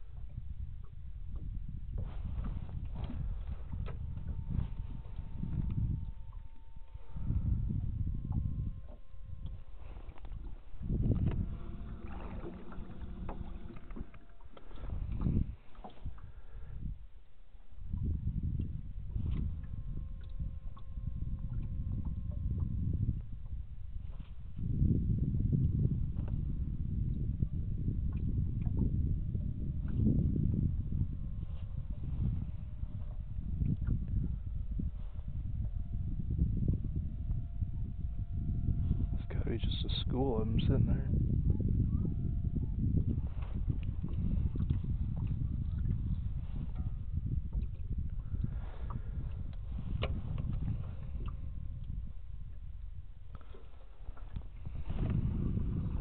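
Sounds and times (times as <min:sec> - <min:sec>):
water and wind rumble: 0:00.0 - 0:56.0
faint thin tones: 0:01.9 - 0:24.6
brief hum: 0:02.0 - 0:17.0, 0:17.6 - 0:25.0, 0:25.6 - 0:39.8.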